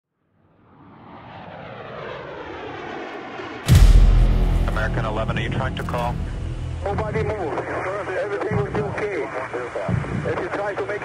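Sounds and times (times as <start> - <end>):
jet engine roar and rumble: 0.6 - 11.0.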